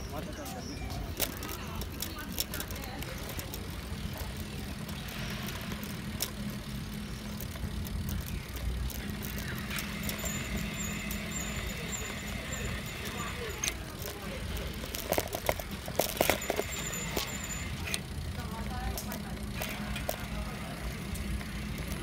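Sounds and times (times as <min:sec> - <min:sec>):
bicycle tyres rumbling on bricks: 0:00.0 - 0:22.0
small rattles and clicks: 0:00.8 - 0:22.0.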